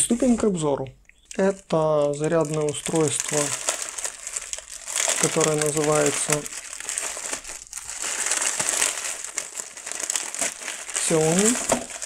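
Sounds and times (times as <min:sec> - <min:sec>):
plastic packaging crinkling: 0:01.3 - 0:12.0.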